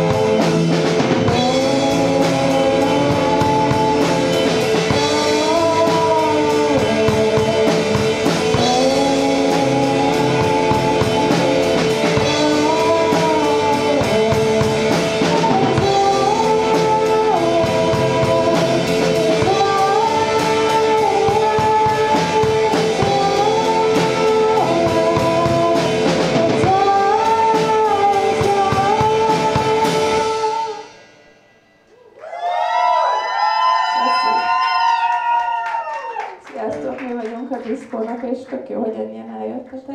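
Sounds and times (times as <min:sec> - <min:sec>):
bass guitar: 0:00.0 - 0:31.1
electric guitar: 0:00.0 - 0:31.2
drum kit: 0:00.0 - 0:38.2
woman singing: 0:01.3 - 0:30.8, 0:36.5 - 0:39.9.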